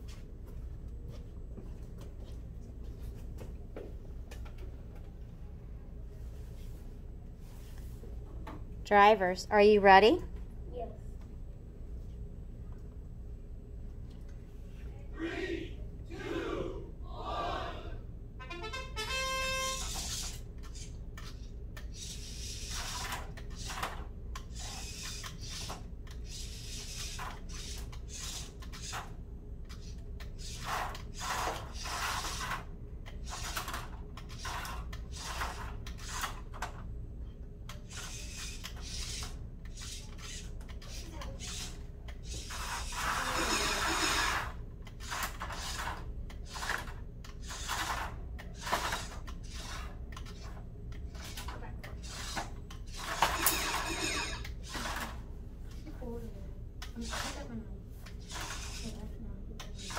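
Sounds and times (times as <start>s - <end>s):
robot motors driving: 37.7s - 55.2s, 58.0s - 59.0s.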